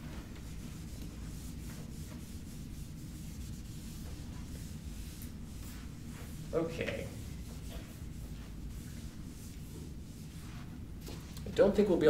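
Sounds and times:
low room hum: 0.0 - 12.0
eraser rubbing on whiteboard: 0.1 - 10.8.

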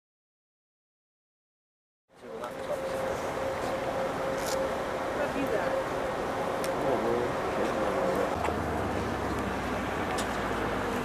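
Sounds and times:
low hum: 2.2 - 11.0.

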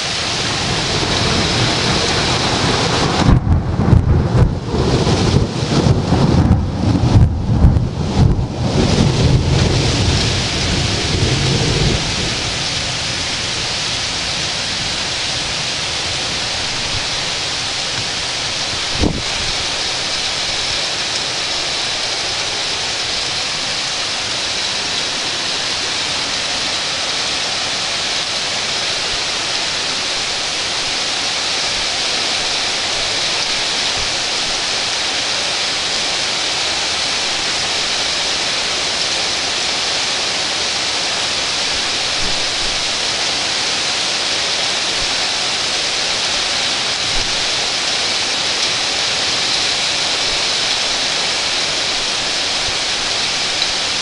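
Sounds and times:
heavy rain falling: 0.0 - 54.0.

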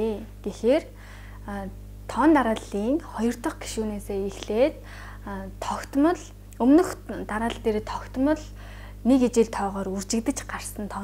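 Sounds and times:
woman lecturing: 0.0 - 11.0.

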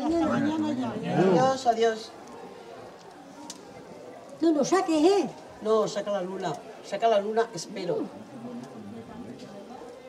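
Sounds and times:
distant people talking: 0.0 - 10.0.

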